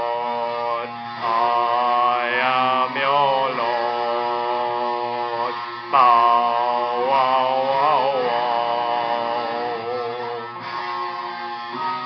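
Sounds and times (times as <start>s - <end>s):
person singing long held notes: 0.0s - 10.6s.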